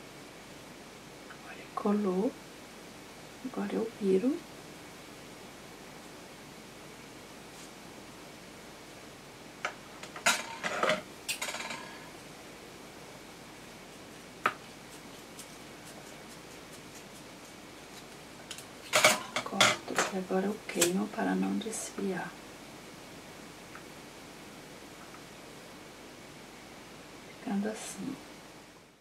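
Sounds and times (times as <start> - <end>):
faint room hum: 0.0 - 29.0.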